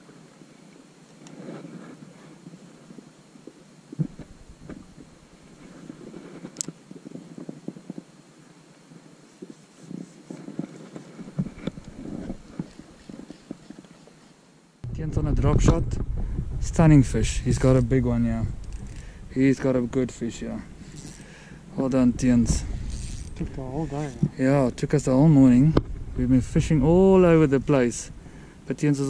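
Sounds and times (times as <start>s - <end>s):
fishing rod and reel handling: 9.4s - 14.4s, 18.5s - 19.6s, 20.7s - 21.4s, 22.7s - 24.4s.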